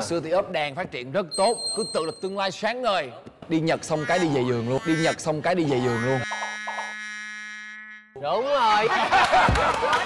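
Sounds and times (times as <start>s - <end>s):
man speaking: 0.0s - 6.3s
buzzer-like synthesizer tone: 4.0s - 8.2s.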